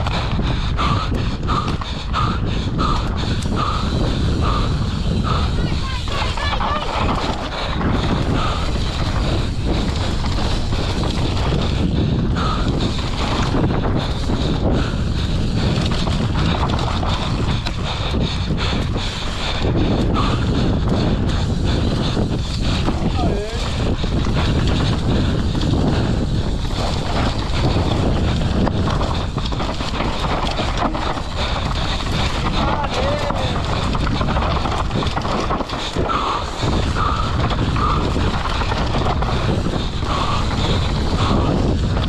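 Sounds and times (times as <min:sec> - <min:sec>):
mountain bike rattling over rocks: 0:00.0 - 0:42.0
tyres on loose dirt: 0:00.0 - 0:42.0
wind buffeting camera: 0:00.0 - 0:42.0.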